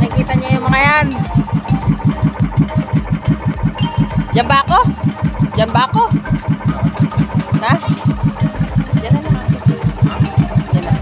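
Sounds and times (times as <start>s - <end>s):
boat engine chugging: 0.0s - 11.0s.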